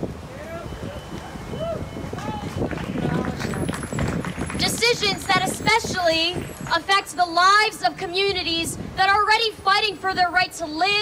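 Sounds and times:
woman speaking: 4.6 - 11.0.

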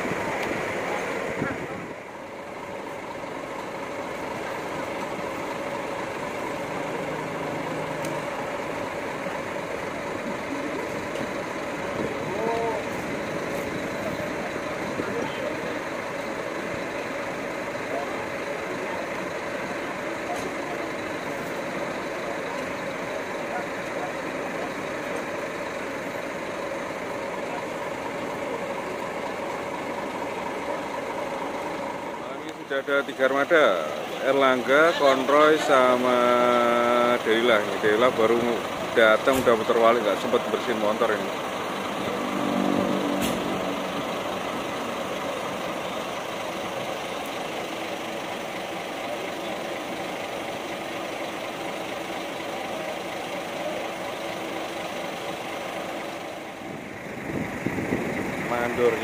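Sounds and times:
bus engine idling: 0.0 - 59.0.

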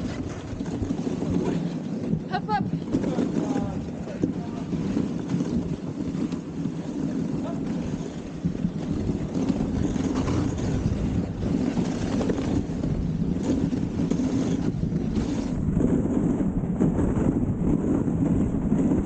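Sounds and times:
sled running over snow: 0.0 - 19.0
wind on microphone: 0.0 - 19.0.

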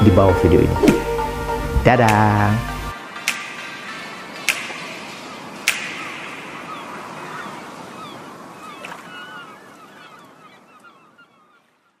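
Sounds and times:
birds calling: 0.5 - 12.0.

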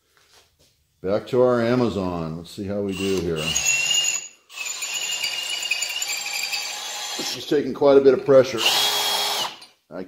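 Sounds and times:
drill grinding steel: 2.9 - 7.6, 8.4 - 9.7.

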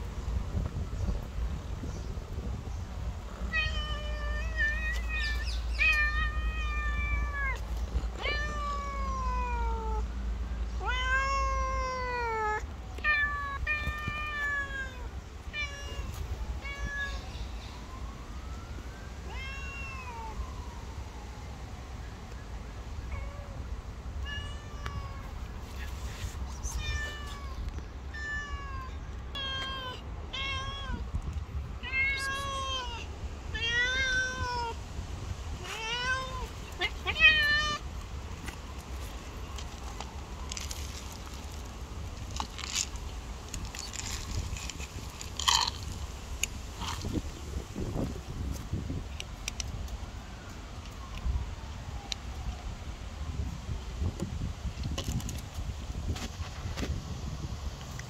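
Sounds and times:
cats meowing: 3.4 - 10.1, 10.8 - 17.3, 19.3 - 20.4, 24.2 - 26.0, 26.6 - 31.0, 31.8 - 34.8, 35.6 - 37.8.

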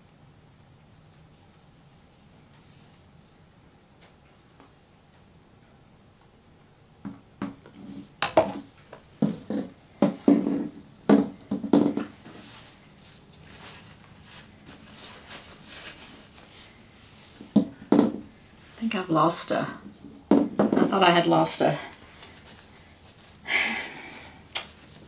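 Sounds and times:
canvas knocking on table: 9.2 - 12.1, 17.4 - 18.3, 20.3 - 20.9
plastic sheet rustling: 12.2 - 17.3.

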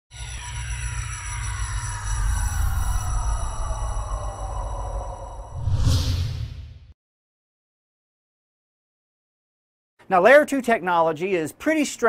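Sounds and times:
deep rumble: 0.2 - 6.9.

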